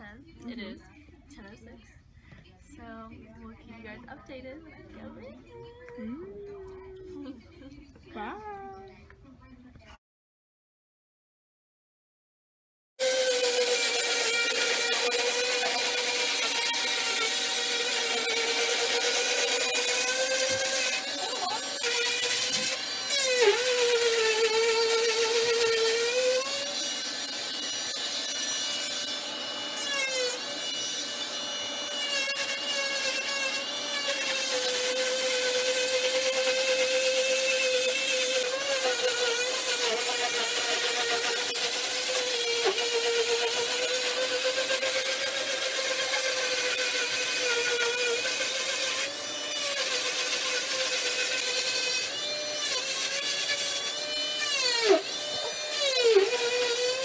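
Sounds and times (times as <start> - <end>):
cast saw cutting: 13.0 - 57.0.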